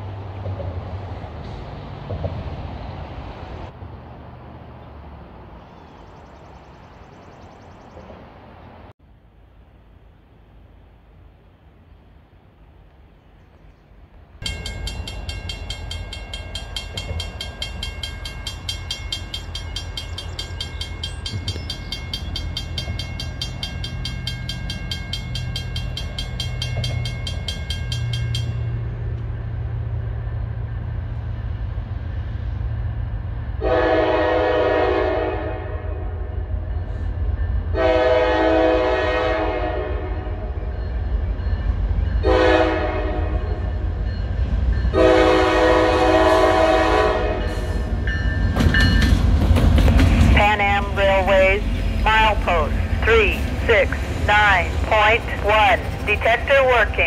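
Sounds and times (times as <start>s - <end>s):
diesel locomotive rumble: 0.0s - 13.4s, 14.0s - 57.0s
railroad crossing bell ringing: 14.4s - 32.4s, 36.6s - 38.2s, 40.4s - 49.2s
locomotive air horn: 33.6s - 36.5s, 37.7s - 40.6s, 42.2s - 43.6s, 44.9s - 47.9s.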